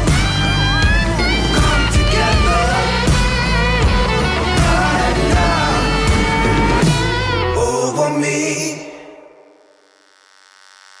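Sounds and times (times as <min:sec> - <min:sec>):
song ending: 0:00.0 - 0:09.0
faint buzzing hum: 0:09.4 - 0:11.0.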